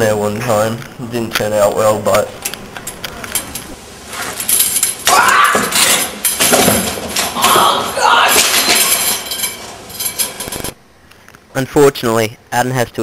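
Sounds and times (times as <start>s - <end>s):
wheelchair clattering down steps: 4.2s - 10.7s.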